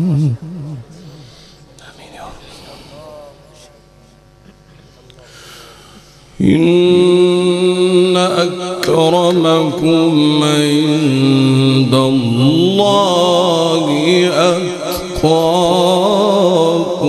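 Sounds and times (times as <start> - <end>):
man reciting melodically: 0.0 - 3.8, 6.4 - 17.0.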